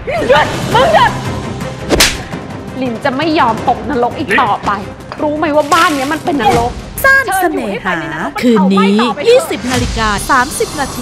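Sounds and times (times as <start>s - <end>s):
whip-like hit with deep thud: 1.9s - 2.3s.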